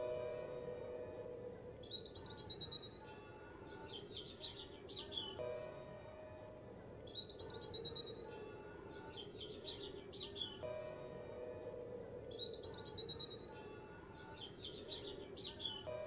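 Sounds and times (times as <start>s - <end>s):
faint music of sustained tones: 0.0s - 16.0s.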